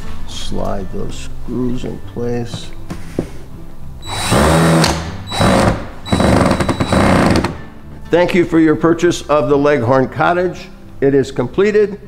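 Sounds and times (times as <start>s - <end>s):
cordless drill driving screws: 4.0s - 7.5s.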